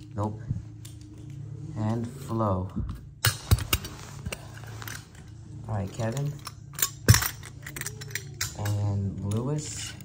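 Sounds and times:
metal toy cars clicking together: 0:06.1 - 0:10.0.

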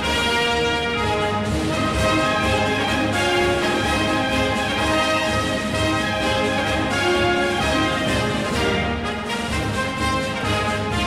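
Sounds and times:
orchestral music with brass: 0:00.0 - 0:11.0.

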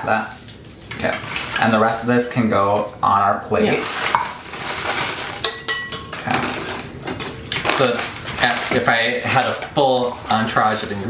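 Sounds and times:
crumbs poured from plastic bag: 0:03.7 - 0:05.4.

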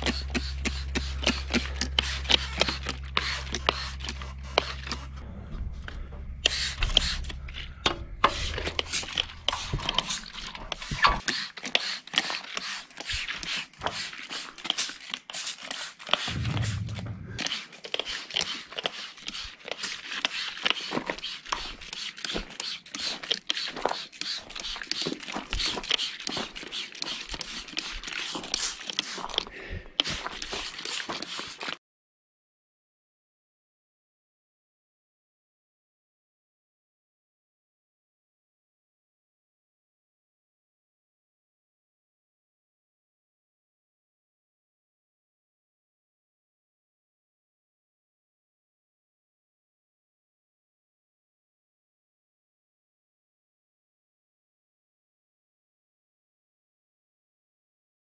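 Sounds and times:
spray bottle squirting: 0:00.0 - 0:05.0, 0:17.4 - 0:31.8
low hum: 0:00.0 - 0:10.7, 0:16.3 - 0:17.5.

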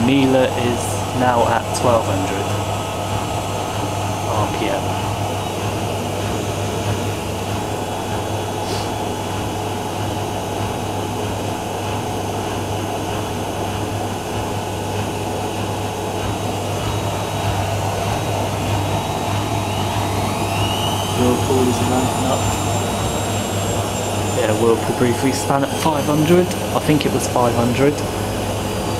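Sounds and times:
motor whine rising: 0:00.0 - 0:28.9
washing machine spin burst: 0:00.0 - 0:28.9
washing machine spinning hum: 0:00.0 - 0:28.9.

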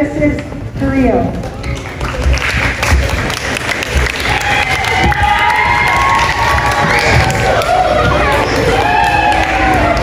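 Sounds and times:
children clapping and cheering: 0:01.4 - 0:10.0.

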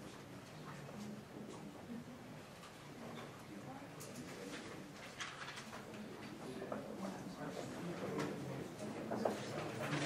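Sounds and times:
faint muffled murmur of voices: 0:00.0 - 0:10.0.

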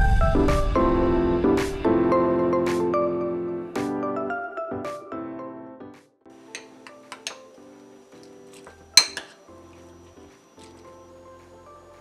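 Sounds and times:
background music sustained notes: 0:00.0 - 0:12.0
spoon clinking ceramic bowl: 0:06.5 - 0:07.5, 0:08.9 - 0:09.4.

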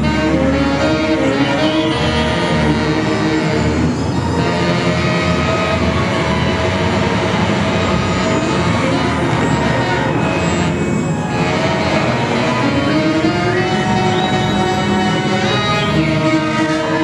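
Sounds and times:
experimental ensemble drone music: 0:00.0 - 0:17.0.

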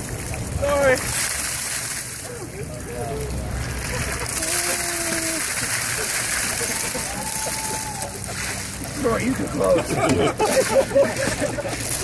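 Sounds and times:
water splashing onto grass: 0:00.0 - 0:12.0
long vocal cries: 0:04.4 - 0:05.4.

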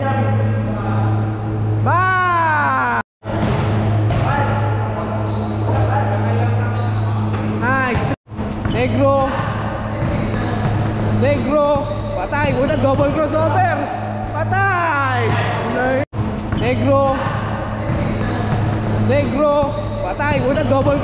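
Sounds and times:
basketball bouncing on indoor court: 0:03.3 - 0:04.4, 0:07.1 - 0:13.2, 0:16.2 - 0:21.0
players' voices: 0:04.1 - 0:16.0, 0:16.6 - 0:21.0.

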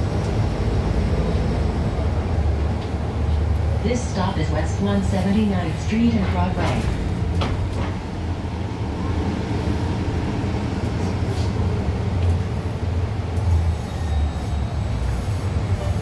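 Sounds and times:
bus cabin low rumble: 0:00.0 - 0:16.0.

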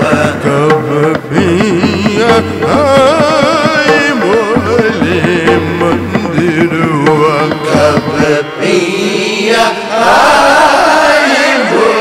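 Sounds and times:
musical accompaniment: 0:00.0 - 0:12.0
person singing ornamented melody: 0:00.0 - 0:12.0.

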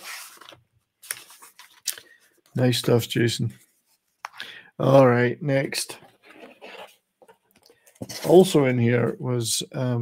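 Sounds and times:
paper and cardboard rustling: 0:00.0 - 0:02.6, 0:06.0 - 0:08.6.

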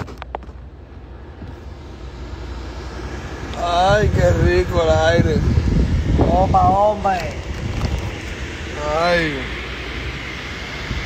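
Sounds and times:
car cabin rumble: 0:00.0 - 0:08.8.

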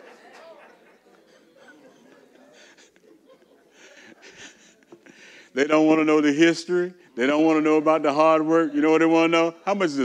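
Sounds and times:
faint breathing: 0:02.4 - 0:03.0, 0:03.7 - 0:05.6
man speaking: 0:05.5 - 0:10.0.

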